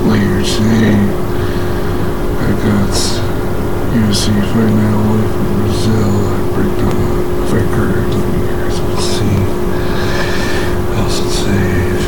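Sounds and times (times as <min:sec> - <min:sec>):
electrical hum: 0:00.0 - 0:12.0
muffled television voices: 0:00.0 - 0:12.0.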